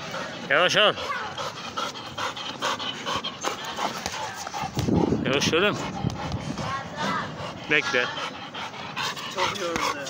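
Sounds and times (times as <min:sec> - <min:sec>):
dog panting: 0:00.0 - 0:10.0.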